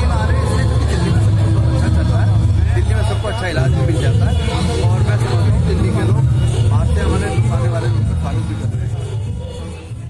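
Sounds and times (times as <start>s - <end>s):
man talking: 0.0s - 9.1s.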